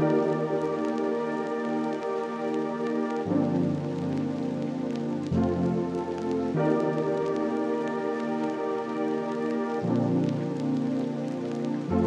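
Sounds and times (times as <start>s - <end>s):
calm lofi music: 0.0s - 12.0s
rain patter: 0.0s - 12.0s.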